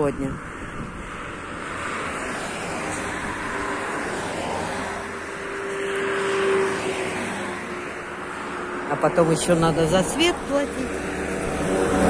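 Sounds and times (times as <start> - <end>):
cars passing by: 0.0 - 12.0.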